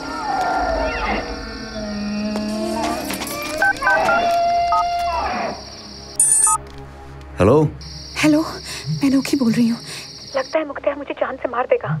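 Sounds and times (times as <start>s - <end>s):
phone keypad beeps: 6.2s - 6.6s.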